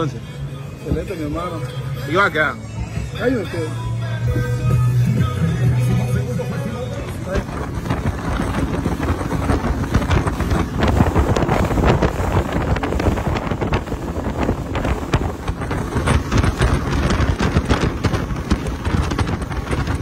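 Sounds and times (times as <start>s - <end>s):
wind buffeting microphone: 6.8s - 20.0s.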